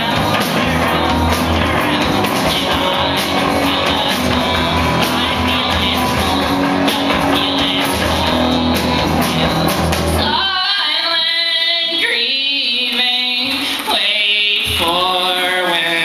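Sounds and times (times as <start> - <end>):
drum hits: 0.0 - 10.4
live rock band playing: 0.0 - 10.6
voices singing together: 0.0 - 12.4.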